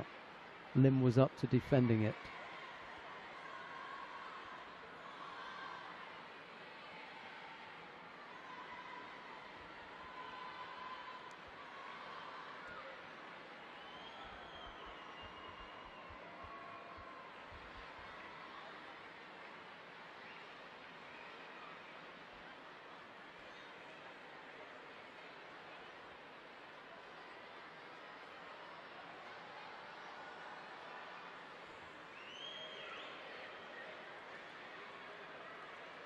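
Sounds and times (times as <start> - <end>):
faint murmur of arena crowd: 0.0 - 36.0.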